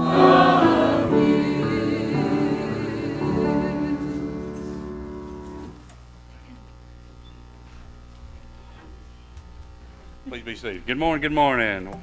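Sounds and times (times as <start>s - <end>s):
congregation singing with choir: 0.0s - 5.8s
faint stirring of congregation: 0.0s - 5.8s
steady low hum: 0.0s - 12.0s.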